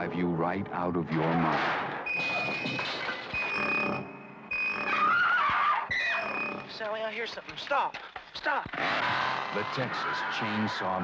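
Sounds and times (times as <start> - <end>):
piercing high steady tone: 5.9 - 6.8.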